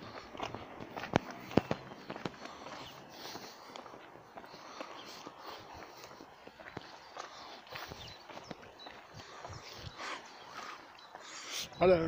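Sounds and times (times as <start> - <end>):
footsteps on gritty tarmac: 0.0 - 12.0.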